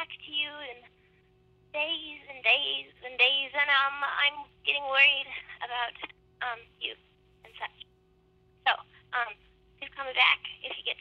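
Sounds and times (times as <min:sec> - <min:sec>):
faint steady hum: 0:00.0 - 0:11.0
person speaking through telephone: 0:08.7 - 0:11.0.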